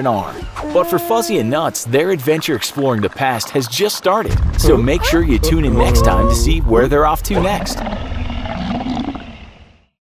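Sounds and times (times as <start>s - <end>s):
low rumbling roar: 4.3s - 9.7s.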